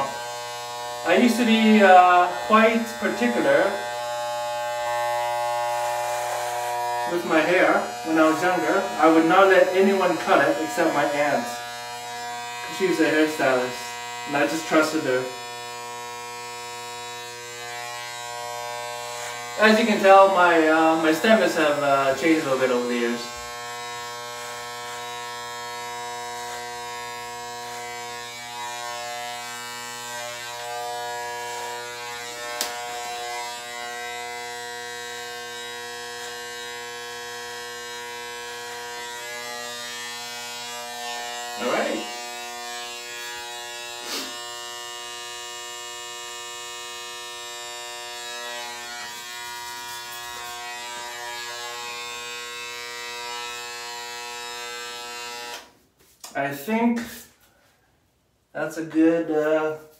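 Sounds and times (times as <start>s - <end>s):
electric hair clippers buzzing: 0.0s - 56.4s.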